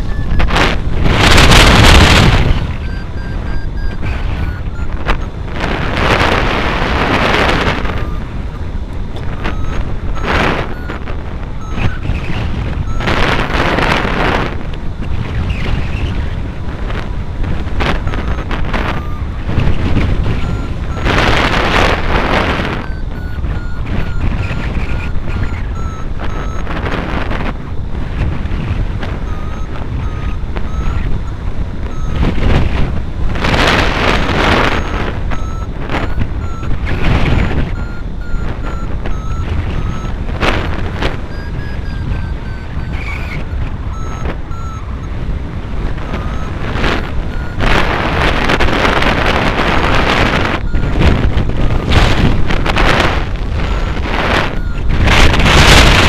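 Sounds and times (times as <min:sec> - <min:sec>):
variometer beeps: 0:00.0 - 0:56.0
wind rushing over microphone: 0:00.0 - 0:56.0.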